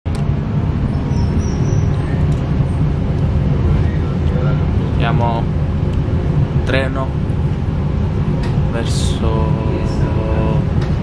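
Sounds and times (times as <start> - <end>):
train rumbling: 0.1 - 11.0
man's voice: 8.7 - 10.7.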